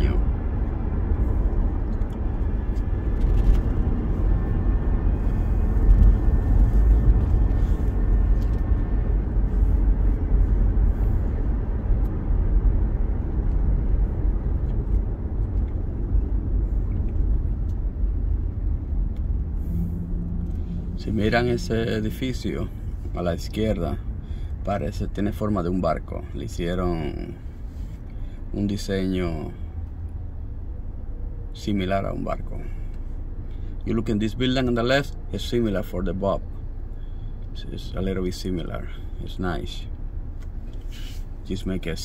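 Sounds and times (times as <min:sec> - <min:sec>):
car cabin road and engine rumble: 0:00.0 - 0:42.0.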